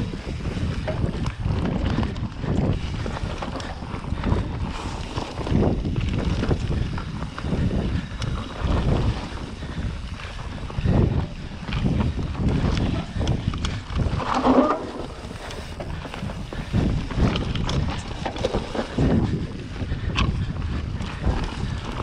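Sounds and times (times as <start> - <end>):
bike clicks and rattles: 0.0 - 22.0
bike tyres rumbling on dirt: 0.0 - 22.0
wind buffeting microphone: 0.0 - 22.0.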